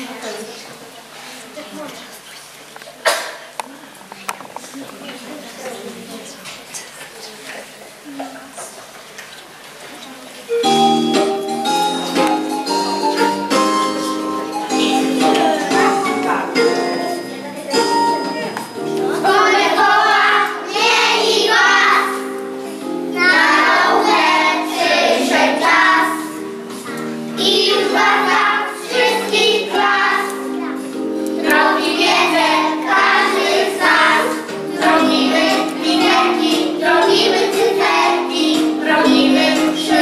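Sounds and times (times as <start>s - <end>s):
instrumental accompaniment: 10.5s - 40.0s
children singing: 18.2s - 22.4s, 23.0s - 26.4s, 27.4s - 30.5s, 31.3s - 40.0s.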